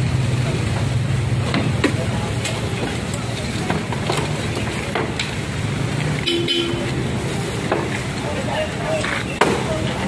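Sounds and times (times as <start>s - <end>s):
engine running: 0.0s - 9.2s
street traffic: 0.0s - 10.0s
wooden carts knocking: 0.5s - 7.0s, 7.6s - 10.0s
vehicle horn toot: 6.2s - 7.0s.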